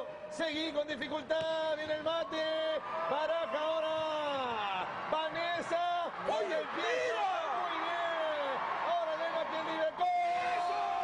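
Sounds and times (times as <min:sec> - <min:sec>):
crowd noise: 0:00.0 - 0:11.0
sports commentator shouting excitedly: 0:02.2 - 0:11.0.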